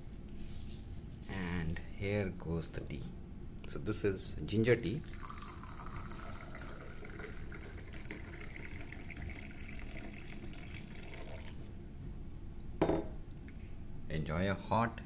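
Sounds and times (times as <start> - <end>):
tea pouring into a clay cup: 5.0 - 11.6.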